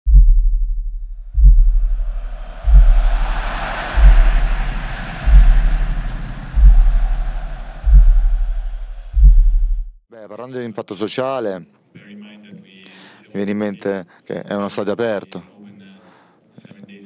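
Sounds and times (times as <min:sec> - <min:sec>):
deep bass booms: 0:00.1 - 0:10.0.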